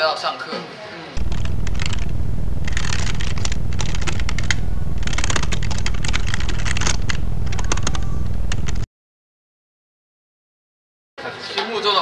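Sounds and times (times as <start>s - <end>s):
low hum: 1.2s - 8.9s.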